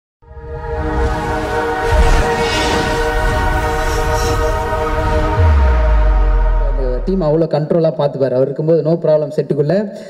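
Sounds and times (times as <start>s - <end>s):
horn-like chord: 0.3s - 7.3s
whoosh: 0.9s - 7.4s
deep bass boom: 4.5s - 7.5s.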